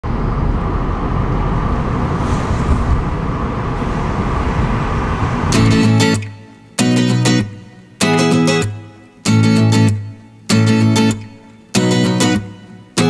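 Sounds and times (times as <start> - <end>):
car road and engine noise: 0.0 - 6.8
acoustic guitar chord: 5.5 - 13.0.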